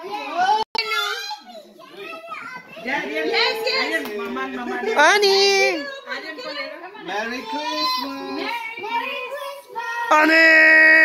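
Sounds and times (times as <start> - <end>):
adults talking: 0.0 - 11.0.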